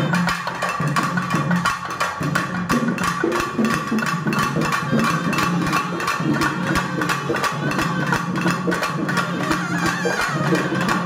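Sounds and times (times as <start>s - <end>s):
rapid hand drum strokes: 0.0s - 11.0s.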